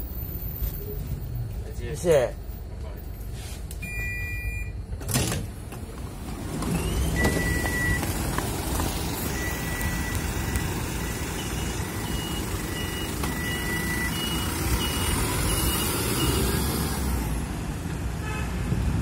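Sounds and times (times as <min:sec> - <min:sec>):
bus engine rumbling: 0:00.0 - 0:19.0.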